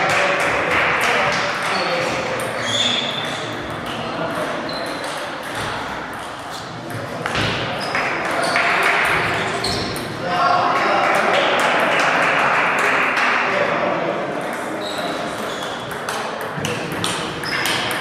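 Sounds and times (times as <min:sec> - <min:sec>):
table tennis balls clicking: 0:15.6 - 0:18.0.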